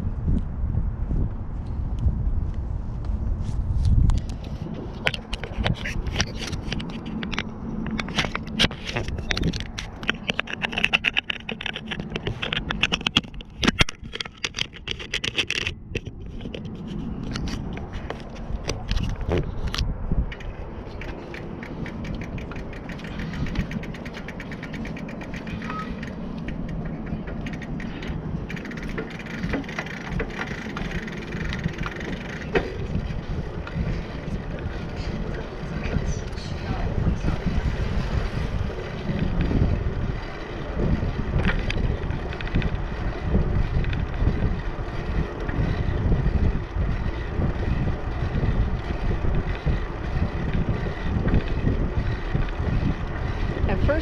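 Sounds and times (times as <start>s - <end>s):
bicycle rolling on concrete: 0.0s - 54.0s
wind buffeting microphone: 0.0s - 54.0s.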